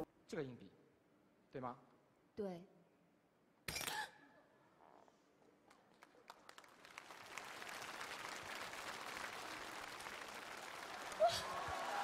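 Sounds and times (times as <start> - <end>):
studio audience applause: 5.7 - 12.0.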